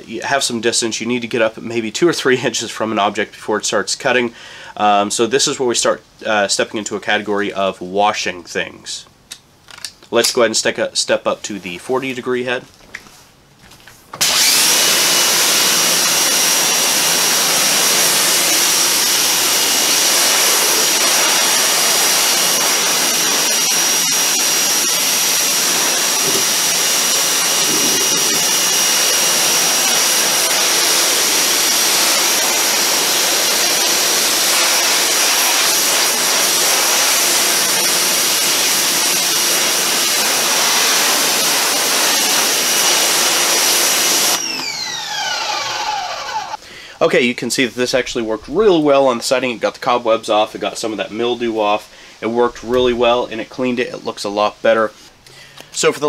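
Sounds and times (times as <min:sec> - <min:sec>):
pressure washer motor whine: 0:14.2 - 0:46.6
water spray hissing on siding: 0:16.3 - 0:44.4.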